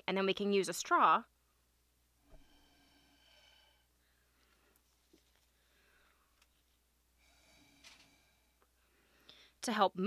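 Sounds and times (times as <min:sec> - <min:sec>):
breath blown through a straw: 0:02.2 - 0:03.9, 0:07.2 - 0:09.5.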